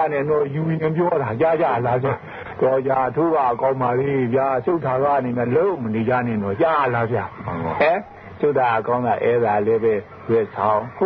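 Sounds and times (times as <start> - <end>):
man talking radio-like: 0.0 - 11.0.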